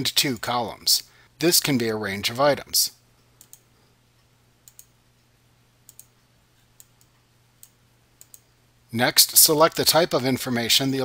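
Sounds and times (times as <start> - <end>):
faint steady hum: 0.0 - 11.0
computer mouse clicking: 3.4 - 3.7, 4.6 - 5.0, 5.9 - 8.5.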